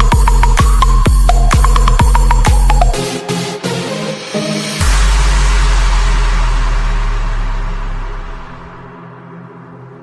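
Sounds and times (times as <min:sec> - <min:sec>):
deep bass note: 0:04.8 - 0:10.0
electronic hit: 0:04.8 - 0:10.0.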